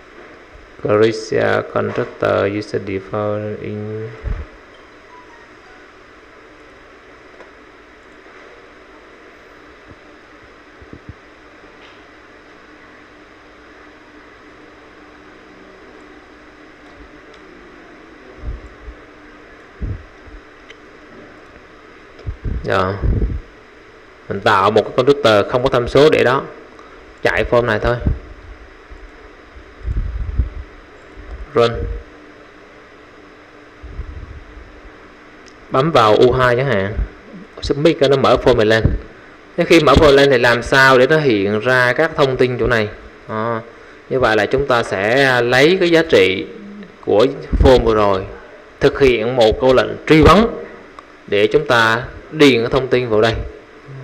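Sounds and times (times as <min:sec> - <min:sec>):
microphone hiss: 0:00.0 - 0:54.0
low rumble on microphone: 0:04.1 - 0:04.6, 0:18.3 - 0:19.1, 0:19.7 - 0:20.5, 0:22.2 - 0:23.6, 0:27.4 - 0:32.1, 0:33.8 - 0:35.1, 0:36.8 - 0:37.6, 0:46.6 - 0:48.4, 0:53.4 - 0:54.0.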